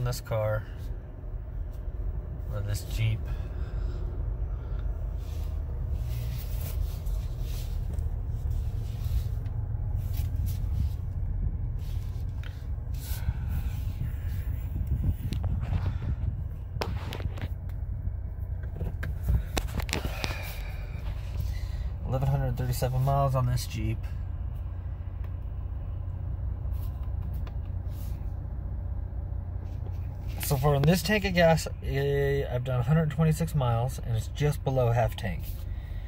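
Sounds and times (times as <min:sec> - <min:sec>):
engine idling heard from inside cab: 0:00.0 - 0:36.0.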